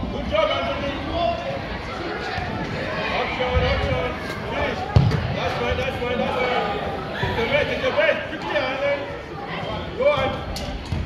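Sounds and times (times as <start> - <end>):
ball thud: 5.0 - 5.3.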